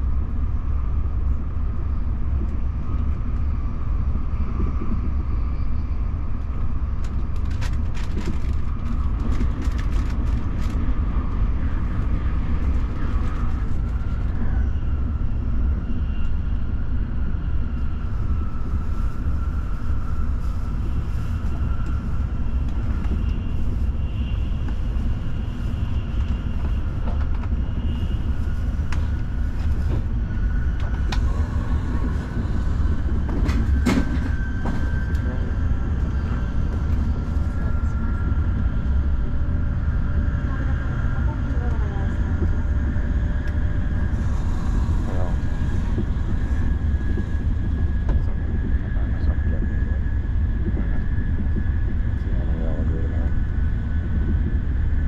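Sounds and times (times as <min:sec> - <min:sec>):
train running at speed: 0:00.0 - 0:55.0
train clicks: 0:07.0 - 0:10.8, 0:33.2 - 0:35.4.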